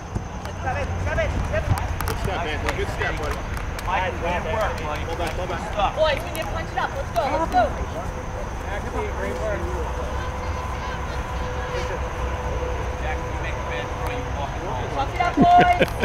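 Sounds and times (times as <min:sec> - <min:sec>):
steady low rumble: 0:00.0 - 0:16.0
people shouting and calling: 0:03.9 - 0:13.6, 0:14.8 - 0:16.0.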